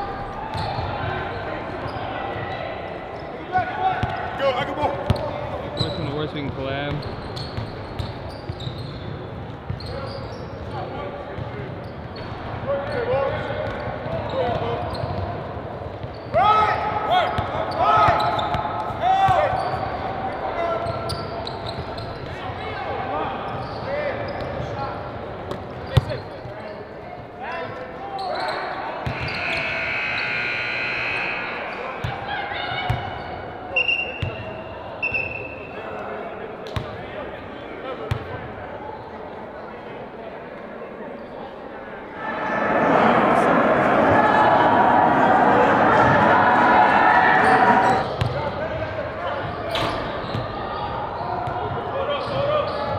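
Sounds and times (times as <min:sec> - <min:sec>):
sneakers squeaking: 0:00.2 - 0:01.0, 0:05.1 - 0:10.7, 0:13.7 - 0:15.2, 0:17.7 - 0:18.6, 0:19.3 - 0:20.0, 0:20.8 - 0:22.4, 0:27.5 - 0:35.7, 0:49.4 - 0:52.9
players calling out: 0:28.2 - 0:33.8, 0:42.1 - 0:49.1.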